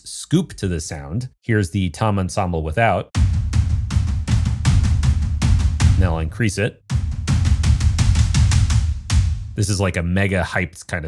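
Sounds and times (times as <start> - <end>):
fast run of deep tom drum hits: 3.2 - 6.2, 6.9 - 9.6.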